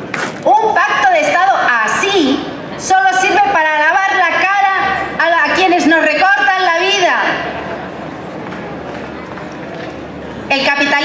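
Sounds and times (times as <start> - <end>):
audience applauding: 8.4 - 10.0.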